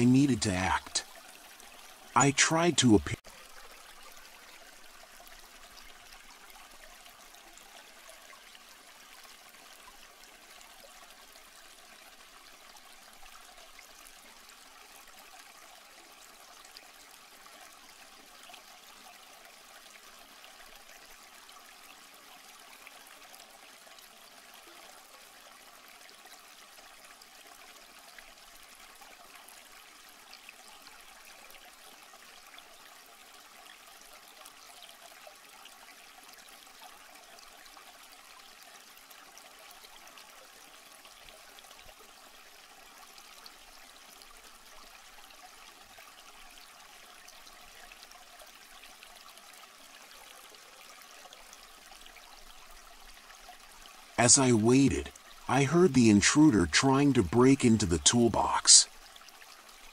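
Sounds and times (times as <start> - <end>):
faint steady hiss: 0.0 - 6.6, 51.2 - 59.1.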